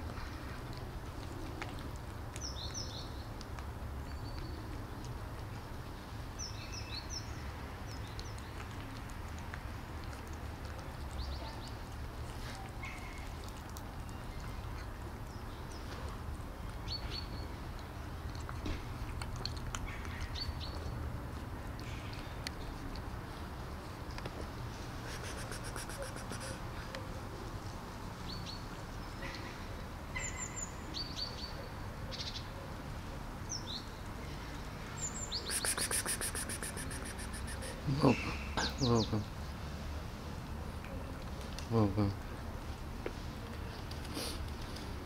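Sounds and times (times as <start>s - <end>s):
cats chewing food: 0.0s - 30.1s, 34.0s - 37.9s, 39.3s - 45.0s
small birds chirping: 2.4s - 3.4s, 16.8s - 21.0s, 25.0s - 27.1s, 33.5s - 39.4s.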